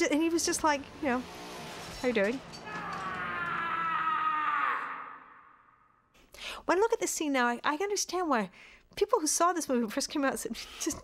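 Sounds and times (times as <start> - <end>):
woman screaming: 2.7 - 5.6.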